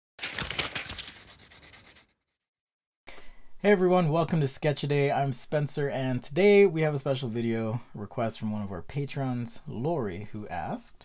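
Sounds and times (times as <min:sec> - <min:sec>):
scribbling on paper: 0:00.9 - 0:02.5.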